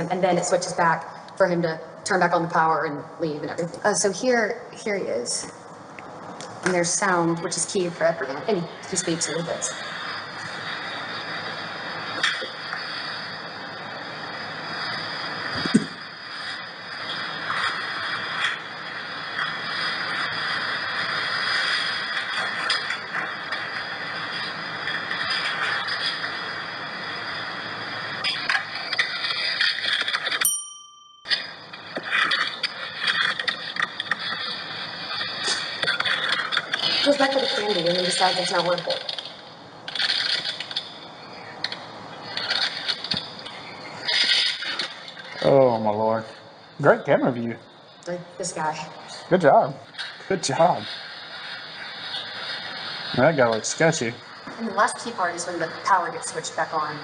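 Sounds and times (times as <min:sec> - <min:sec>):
steady hiss: 0:00.0 - 0:30.5, 0:31.3 - 0:57.0.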